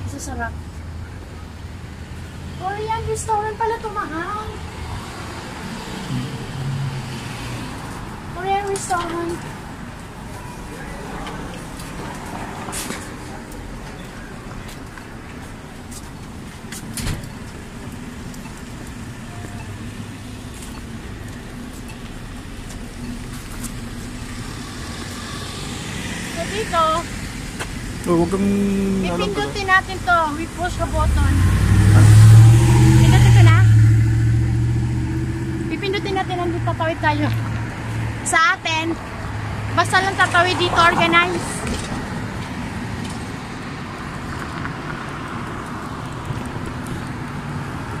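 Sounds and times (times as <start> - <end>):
vehicle passing: 0.0 - 16.0, 17.6 - 48.0
traffic engine hum: 0.0 - 48.0.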